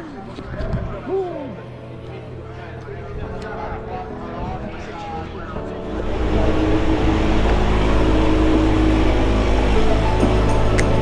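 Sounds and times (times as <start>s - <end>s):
aircraft piston engine running: 5.8s - 11.0s.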